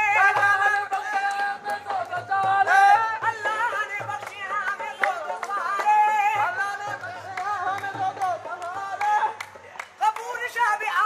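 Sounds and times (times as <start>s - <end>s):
hand drum beat: 0.0s - 9.4s.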